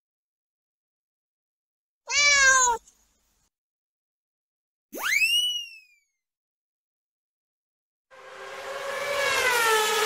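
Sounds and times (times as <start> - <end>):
cat meowing: 2.1 - 2.9.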